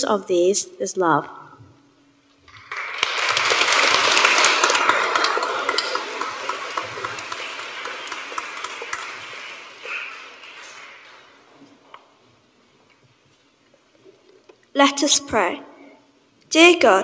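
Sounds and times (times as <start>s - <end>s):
crowd applauding: 2.5s - 11.9s.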